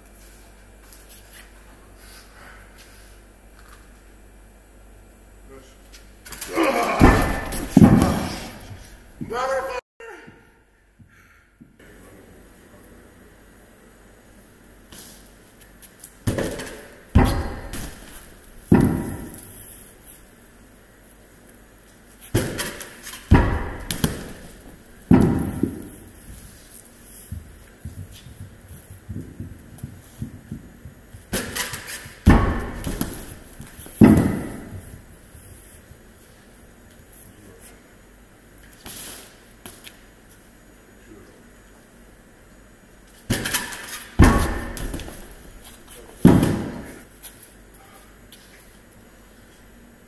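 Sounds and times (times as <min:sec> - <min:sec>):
heavy stones thudding on wood: 0:06.9 - 0:08.7, 0:22.4 - 0:26.1, 0:32.2 - 0:35.0, 0:44.2 - 0:45.6, 0:46.2 - 0:47.0.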